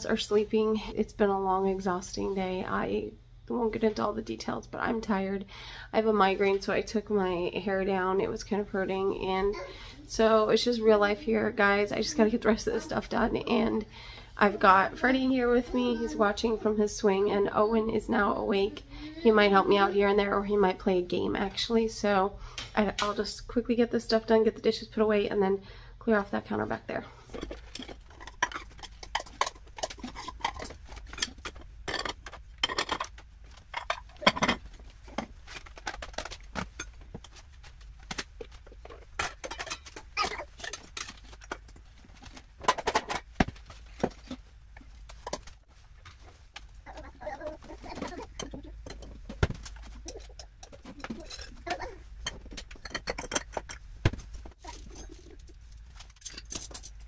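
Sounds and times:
dishes and cutlery clinking: 27.4 - 35.3, 38.9 - 41.8, 47.9 - 53.8, 54.6 - 57.0.

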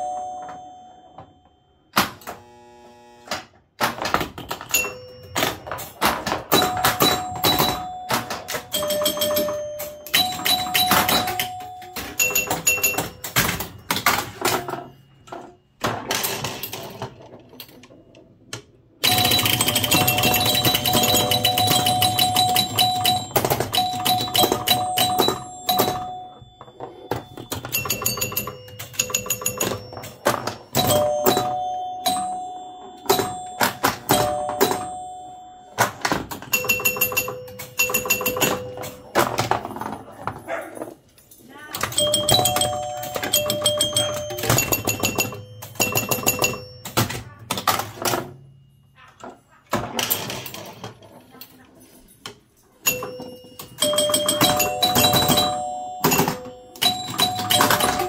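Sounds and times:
pinball bell tones: 0.0 - 2.1, 4.1 - 18.2, 19.0 - 40.6, 41.5 - 51.0, 52.6 - 58.0
pinball flippers clacking: 3.8 - 40.4, 41.8 - 48.5, 52.8 - 58.0.

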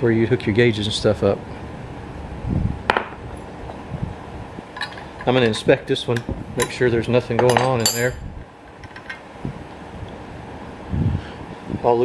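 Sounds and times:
metallic clink with ring: 7.5 - 8.2.

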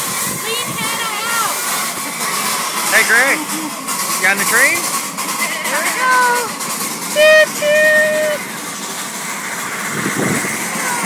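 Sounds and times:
indistinct voices talking: 0.2 - 11.0.

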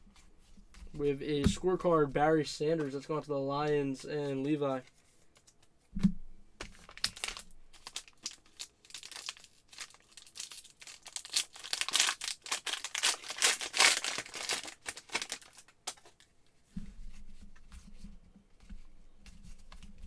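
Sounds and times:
foil wrapper tearing and crinkling: 6.8 - 16.2.

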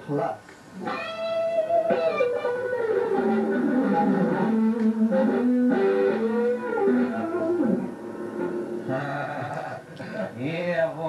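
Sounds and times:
electric guitar lead run: 0.8 - 9.1.

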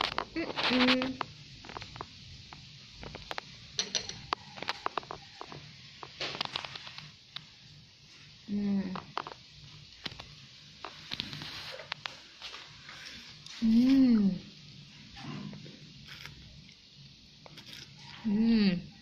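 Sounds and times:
person humming: 13.6 - 14.4, 18.3 - 18.9.

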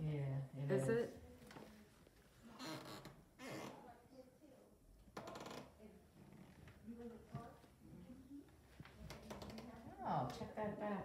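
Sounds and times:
soft rustles: 1.0 - 3.1.

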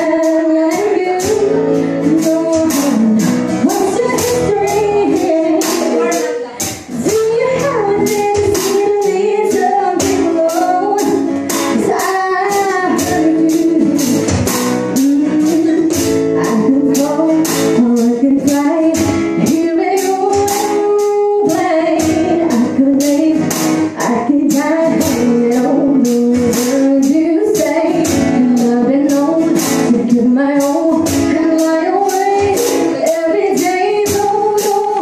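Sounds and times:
hand percussion beat: 0.0 - 35.0
strummed acoustic guitar: 0.0 - 35.0
woman singing: 0.0 - 35.0.

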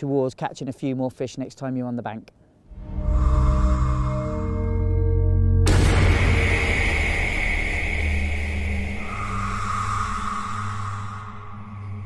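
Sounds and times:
deep impact rumble: 3.6 - 12.0.

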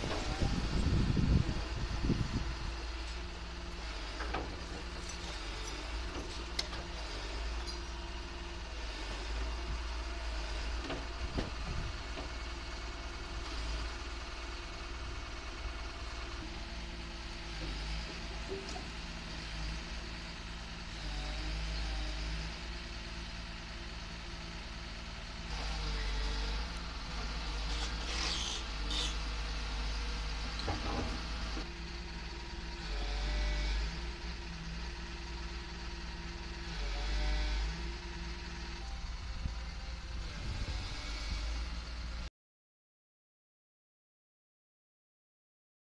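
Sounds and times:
excavator diesel engine revving: 0.0 - 42.3.

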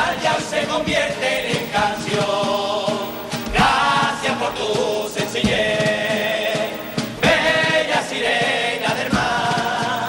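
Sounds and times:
drums: 0.0 - 10.0
male chorus singing in unison: 0.0 - 10.0.

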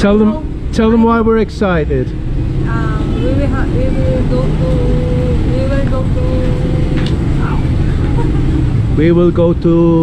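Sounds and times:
passing vehicles rumbling: 0.0 - 10.0.

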